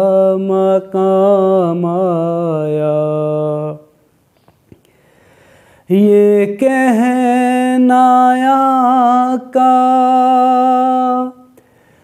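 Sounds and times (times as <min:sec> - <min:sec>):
man reciting unaccompanied: 0:00.0 - 0:04.0, 0:05.9 - 0:11.6.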